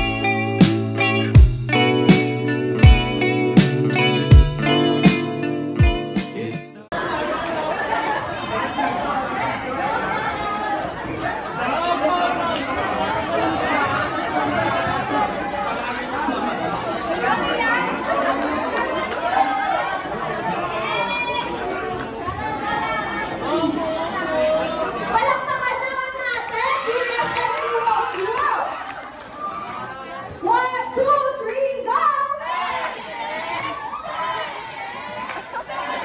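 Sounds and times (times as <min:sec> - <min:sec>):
crowd chatter: 0:00.0 - 0:36.0.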